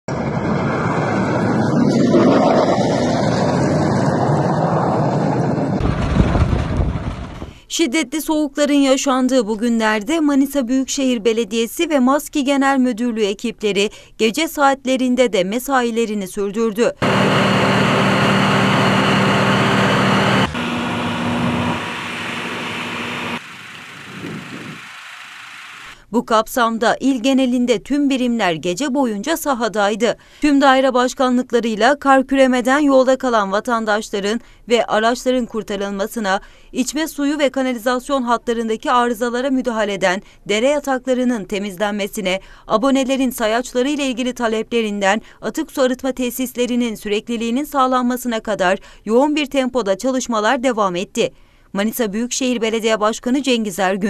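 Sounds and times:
deep engine rumble: 0:00.1 - 0:07.6, 0:17.0 - 0:24.8
tractor engine running: 0:17.0 - 0:26.0.

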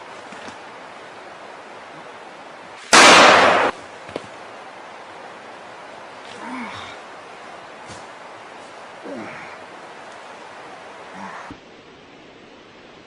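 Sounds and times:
loud gunshot: 0:02.9 - 0:03.8.

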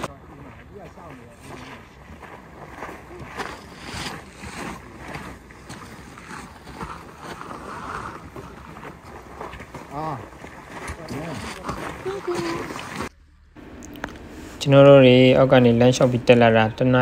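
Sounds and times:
footsteps on forest trail: 0:00.0 - 0:13.2
person speaking: 0:10.9 - 0:13.0.

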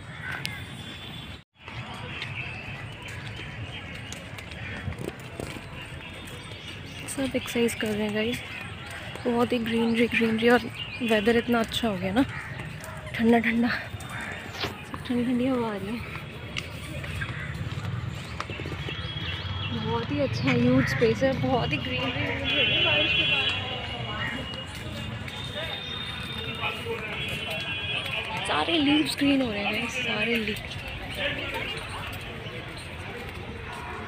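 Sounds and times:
footsteps on paved path: 0:00.0 - 0:34.0
woman's voice: 0:07.1 - 0:08.5, 0:09.2 - 0:12.3, 0:13.1 - 0:13.9, 0:15.0 - 0:16.2, 0:19.7 - 0:24.4, 0:28.4 - 0:30.7.

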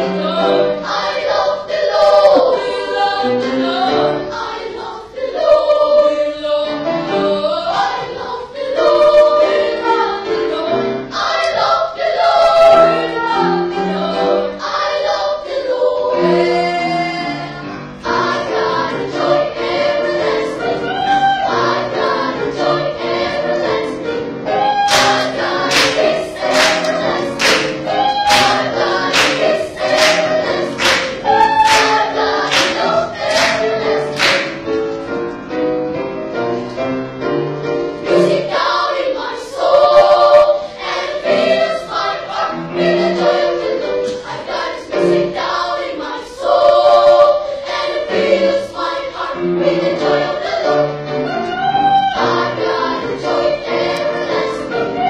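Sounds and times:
children's choir singing: 0:00.0 - 0:35.4, 0:36.8 - 0:55.0
sharp rhythmic beats: 0:24.8 - 0:34.9.

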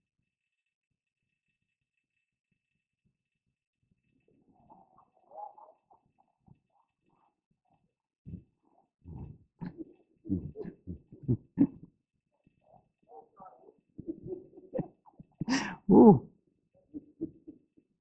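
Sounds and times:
man laughing quietly: 0:09.1 - 0:11.8.

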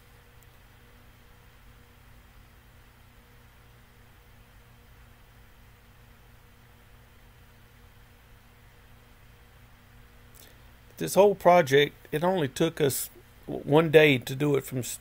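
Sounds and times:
faint steady hiss: 0:00.0 - 0:15.0
low even hum: 0:00.0 - 0:15.0.

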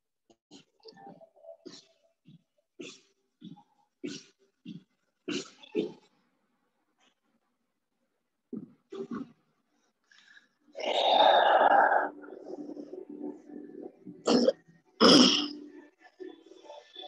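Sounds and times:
person coughing: 0:02.8 - 0:06.1, 0:14.2 - 0:15.6.

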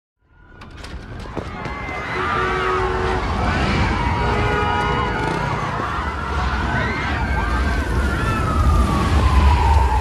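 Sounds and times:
siren-like tone gliding down: 0:02.1 - 0:10.0.

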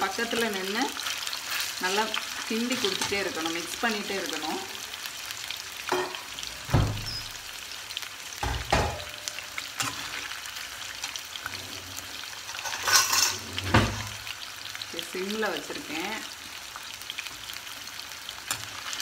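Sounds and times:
chicken frying in hot oil: 0:00.0 - 0:19.0
steel spatula scraping a wok: 0:09.7 - 0:14.1.

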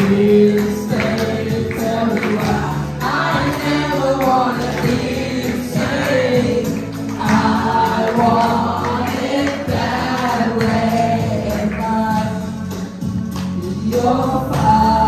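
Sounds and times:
instrumental backing music: 0:00.0 - 0:15.0
person singing into microphone: 0:00.0 - 0:15.0.

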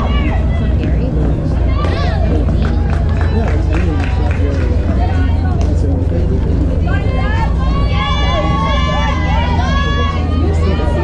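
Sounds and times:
people shouting and calling out: 0:00.0 - 0:11.0
steady low rumble: 0:00.0 - 0:11.0.

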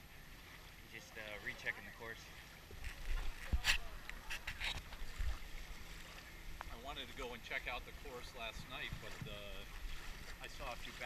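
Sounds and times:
small waves lapping: 0:00.0 - 0:11.0
man talking: 0:00.9 - 0:02.3, 0:06.7 - 0:09.7, 0:10.4 - 0:11.0
wind buffeting microphone: 0:08.4 - 0:11.0.

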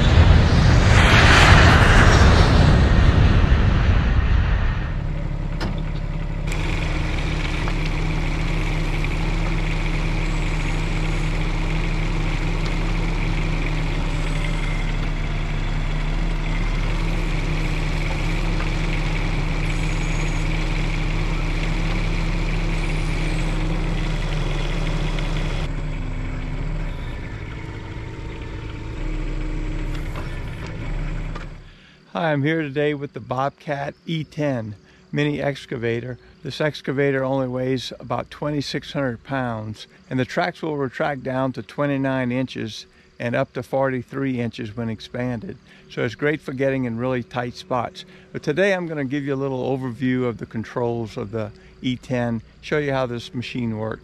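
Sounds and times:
hydraulic whine: 0:00.0 - 0:32.1, 0:44.4 - 0:54.0
diesel engine running: 0:00.0 - 0:32.4, 0:42.1 - 0:54.0.

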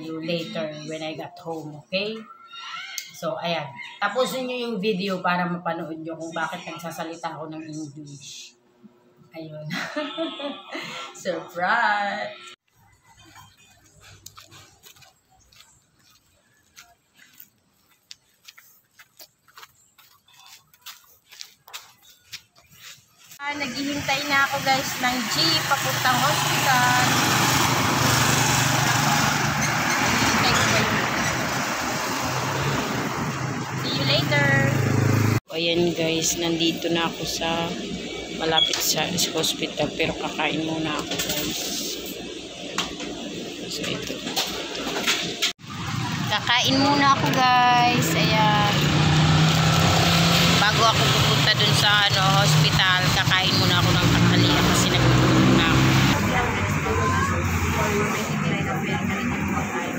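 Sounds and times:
vehicles passing on road: 0:23.5 - 0:59.9.

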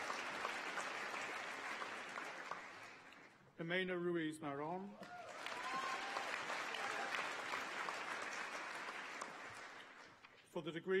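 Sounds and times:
audience applauding: 0:00.0 - 0:03.4, 0:05.0 - 0:10.3.

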